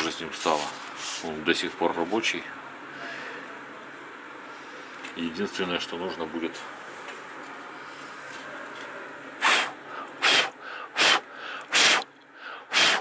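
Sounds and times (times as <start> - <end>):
person blowing forceful puffs: 9.4 - 12.1, 12.7 - 13.0.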